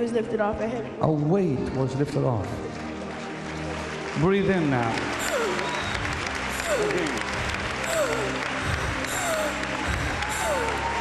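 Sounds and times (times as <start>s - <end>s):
background music with held chords: 0.0s - 11.0s
congregation applauding: 1.2s - 11.0s.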